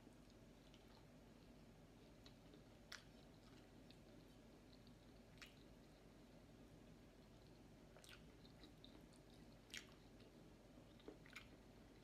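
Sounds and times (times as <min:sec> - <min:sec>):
low room hum: 0:00.0 - 0:12.0
close-up chewing: 0:00.2 - 0:12.0.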